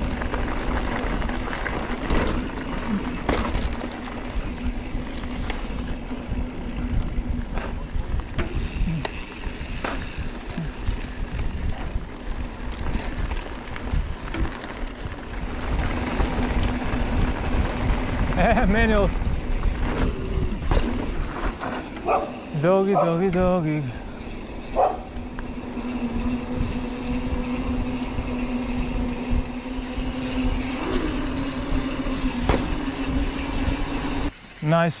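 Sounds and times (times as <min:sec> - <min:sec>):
tyres crunching on gravel: 0:00.0 - 0:07.9
bike clicks and rattles: 0:00.0 - 0:35.0.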